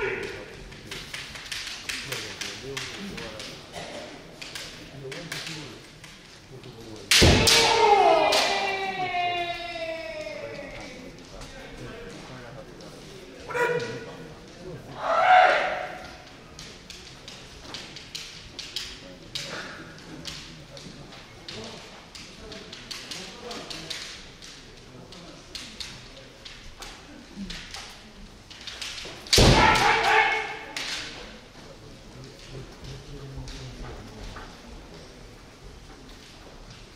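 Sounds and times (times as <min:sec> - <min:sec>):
loud shout: 0:00.0 - 0:00.4, 0:07.2 - 0:11.0, 0:15.0 - 0:16.0, 0:29.4 - 0:30.8
bamboo sword cracking on armour: 0:07.1 - 0:08.6, 0:28.5 - 0:31.2.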